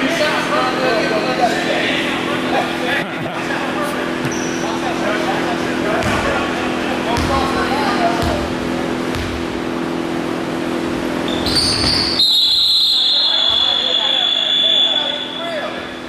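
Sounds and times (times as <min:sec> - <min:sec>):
players' voices murmuring: 0:00.0 - 0:11.3, 0:13.0 - 0:16.0
steady low hum: 0:00.0 - 0:16.0
basketball bouncing on hardwood: 0:07.2 - 0:07.4, 0:09.1 - 0:09.4.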